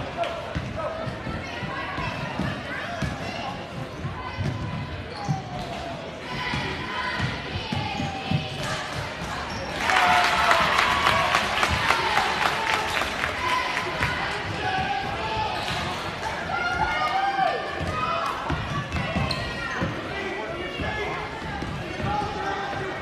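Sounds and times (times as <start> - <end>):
crowd clapping: 9.8 - 14.2.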